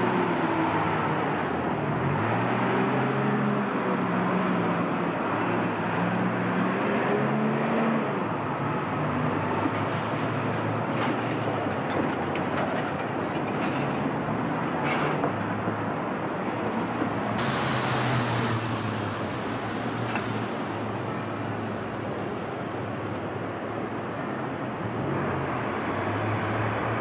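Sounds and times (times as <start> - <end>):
bus diesel engine pulling away: 16.7 - 23.4.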